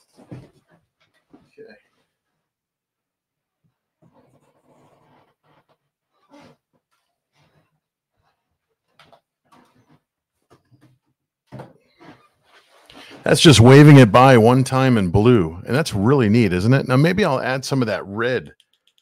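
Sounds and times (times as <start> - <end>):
breath-like sounds: 12.9 - 13.3.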